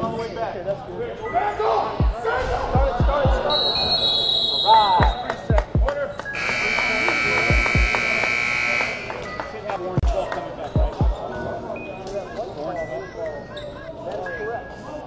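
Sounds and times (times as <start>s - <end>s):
voices in a hall: 0.0s - 15.0s
scoreboard buzzer: 6.4s - 9.3s.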